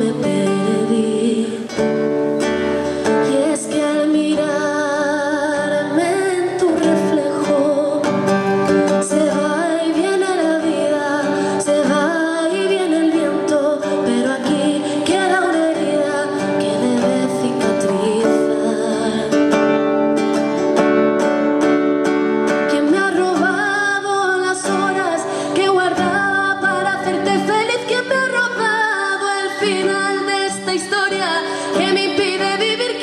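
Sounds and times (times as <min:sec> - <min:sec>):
woman singing: 0:00.0 - 0:20.6, 0:22.1 - 0:33.0
acoustic guitar strumming: 0:00.0 - 0:33.0.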